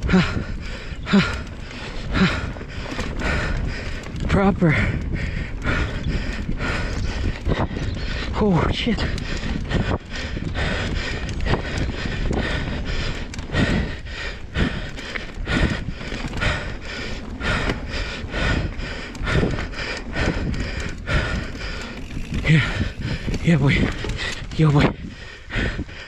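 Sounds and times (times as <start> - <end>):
bike clattering over bumps: 0.0 - 26.0
bike tyres on dirt: 0.0 - 26.0
wind noise on microphone: 0.0 - 26.0.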